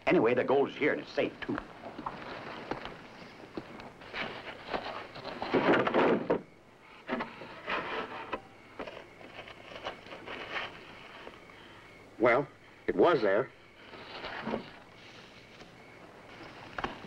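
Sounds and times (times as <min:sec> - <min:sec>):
rustling on straw: 0:01.8 - 0:05.8, 0:07.4 - 0:11.5.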